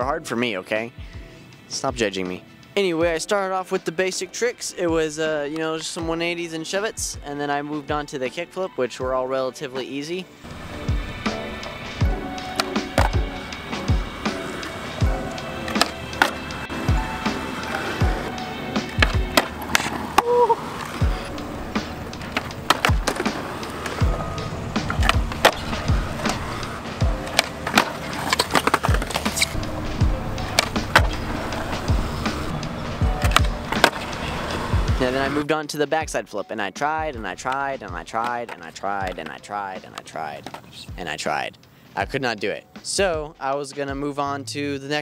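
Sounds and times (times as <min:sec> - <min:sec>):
background music with steady beat: 0:00.0 - 0:45.0
skateboard wheels rolling on concrete: 0:10.4 - 0:35.5, 0:37.1 - 0:41.5
skateboard pops and slaps: 0:12.5 - 0:13.2, 0:15.6 - 0:16.4, 0:18.8 - 0:21.0, 0:22.2 - 0:24.0, 0:27.2 - 0:29.5, 0:30.5 - 0:31.2, 0:33.2 - 0:34.1.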